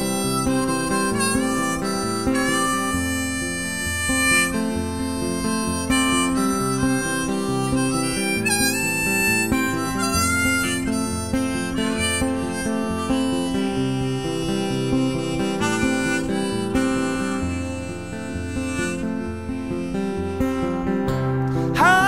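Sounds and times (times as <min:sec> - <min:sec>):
acoustic guitar picking: 0:00.0 - 0:22.0
harmonica: 0:00.0 - 0:22.0.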